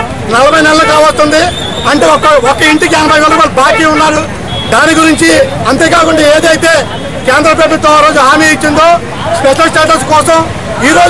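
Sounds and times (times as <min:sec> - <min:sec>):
crowd chatter: 0:00.0 - 0:11.0
man speaking loudly: 0:00.0 - 0:11.0
vehicle noise: 0:00.0 - 0:11.0.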